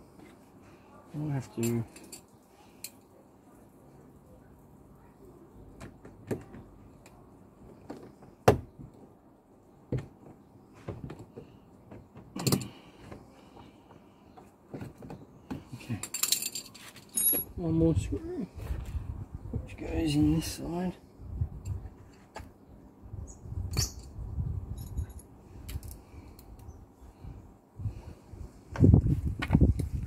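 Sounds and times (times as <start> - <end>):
tools and screws clinking: 1.3 - 3.1, 12.3 - 12.9, 15.6 - 17.6, 23.7 - 26.1
metallic jingling: 1.5 - 3.0.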